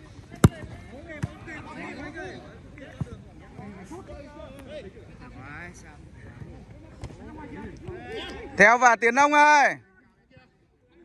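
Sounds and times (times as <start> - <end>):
football kick thud: 0.3 - 1.4.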